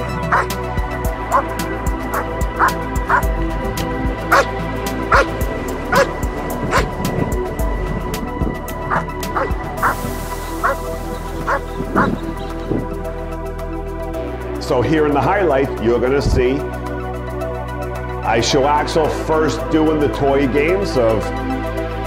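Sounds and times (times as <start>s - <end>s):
background music with held tones: 0.0s - 22.0s
dog barking: 0.3s - 0.5s, 2.1s - 3.3s, 4.3s - 4.5s, 5.1s - 5.3s, 5.9s - 6.1s, 6.7s - 6.9s, 8.9s - 10.0s, 10.6s - 10.8s, 11.5s - 12.1s.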